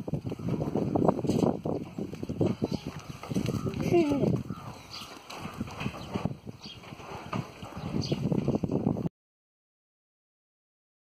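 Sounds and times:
hooves scuffing on dry dirt: 0.0 - 8.9.

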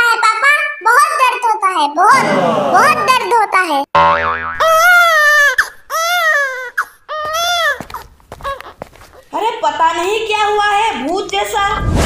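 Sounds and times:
cartoon boing: 4.0 - 5.0
high-pitched cartoon-voice cries: 4.6 - 8.8.

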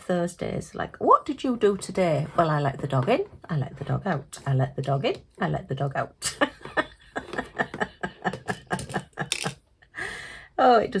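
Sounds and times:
woman laughing: 6.2 - 10.2.

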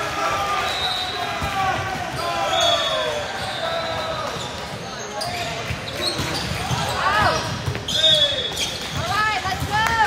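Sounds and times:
players shouting: 0.0 - 4.5
referee's whistle: 0.5 - 1.6, 2.2 - 4.4, 7.9 - 8.8.

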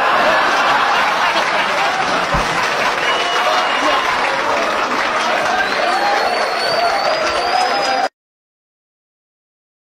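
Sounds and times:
crowd voices: 0.0 - 8.1
applause: 0.1 - 8.1.

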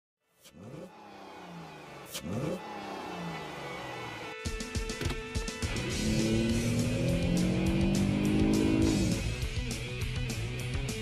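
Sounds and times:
car engine revving: 0.4 - 9.5.

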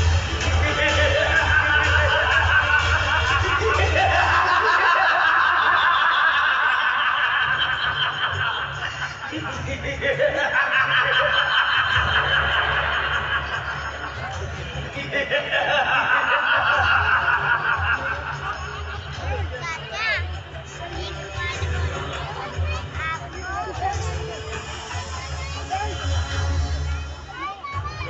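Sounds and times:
crowd chattering and laughing: 0.0 - 28.0
person laughing: 0.9 - 13.6.

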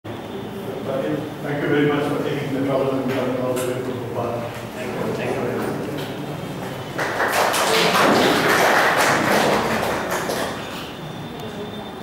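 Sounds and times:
audience applauding: 6.6 - 10.8.

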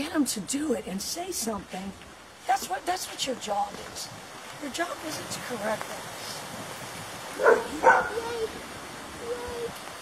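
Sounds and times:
dog barking: 7.4 - 8.3.

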